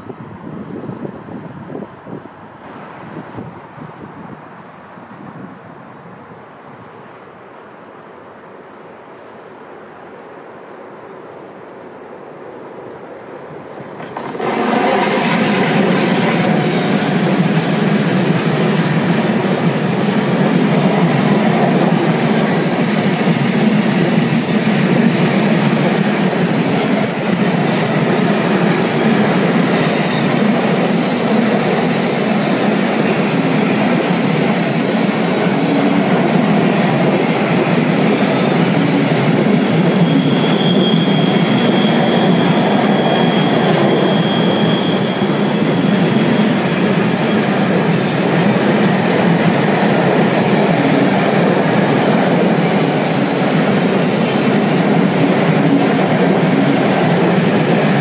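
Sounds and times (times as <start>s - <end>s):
train wheels on rails: 9.3s - 58.0s
high wheel squeal: 39.8s - 48.2s.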